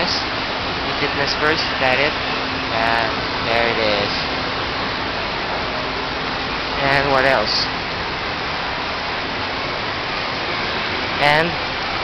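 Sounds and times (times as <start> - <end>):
indoor mall background hiss: 0.0 - 12.0.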